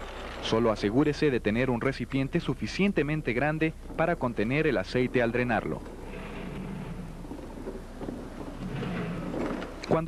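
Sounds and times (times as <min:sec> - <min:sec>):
creeper rolling on concrete floor: 0:03.8 - 0:10.0.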